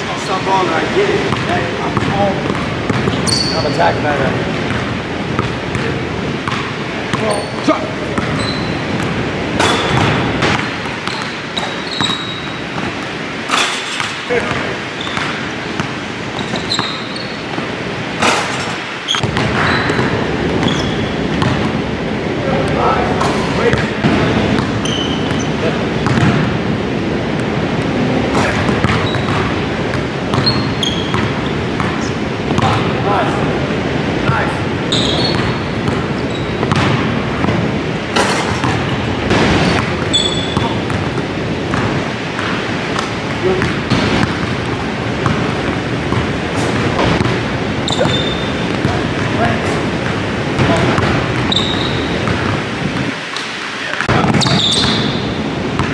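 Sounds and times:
basketball bouncing on wood floor: 0:01.3 - 0:03.5, 0:04.6 - 0:07.4, 0:08.1 - 0:18.4, 0:19.1 - 0:21.8, 0:23.2 - 0:26.5, 0:28.4 - 0:32.8, 0:35.0 - 0:37.6, 0:38.2 - 0:49.4, 0:50.0 - 0:53.1, 0:54.1 - 0:55.2.

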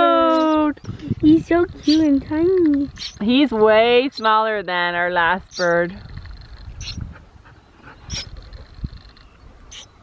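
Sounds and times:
low rumble of wind: 0:00.0 - 0:10.0
songbird nestling peeping: 0:00.1 - 0:10.0.

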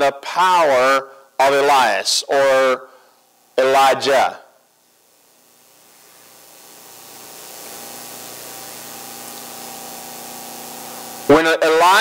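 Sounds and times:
faint hum: 0:00.0 - 0:12.0
room noise hiss: 0:00.0 - 0:12.0.

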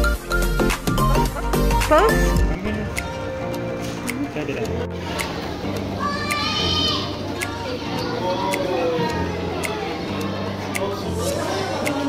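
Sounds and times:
background music with ticking beat: 0:00.0 - 0:12.0
child calling out: 0:06.0 - 0:07.1.

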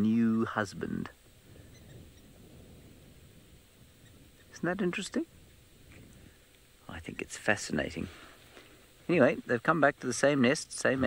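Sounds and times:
low steady rumble: 0:00.0 - 0:11.0
faint high chirps: 0:01.5 - 0:02.4.

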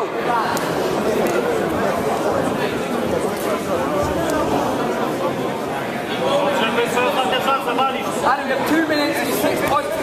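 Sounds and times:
crowd chattering in hall: 0:00.0 - 0:10.0.

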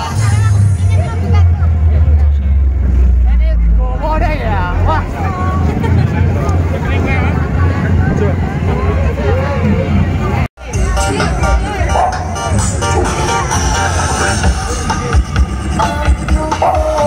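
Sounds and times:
crowd chatter: 0:00.0 - 0:17.0
dance music with heavy bass: 0:10.6 - 0:17.0.

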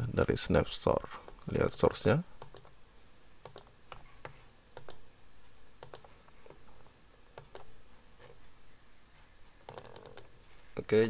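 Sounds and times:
computer mouse clicks: 0:02.4 - 0:02.7, 0:03.4 - 0:05.0, 0:05.8 - 0:06.6, 0:07.3 - 0:08.4, 0:09.6 - 0:10.7.

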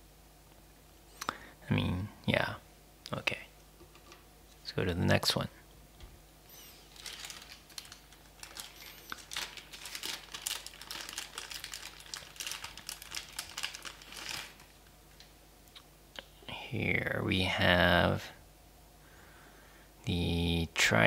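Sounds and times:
plastic packaging crinkling: 0:06.5 - 0:15.0.

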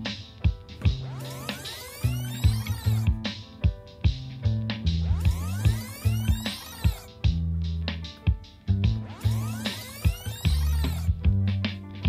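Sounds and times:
electronic music with pulsing beat: 0:00.0 - 0:12.0.

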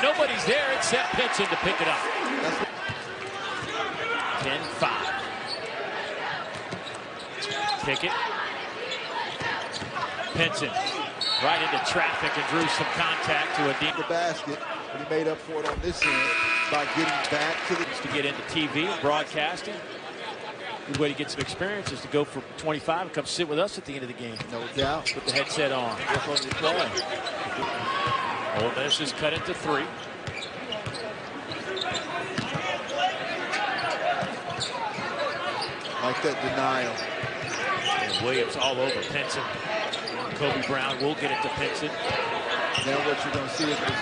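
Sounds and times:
arena crowd hum: 0:00.0 - 0:44.0.

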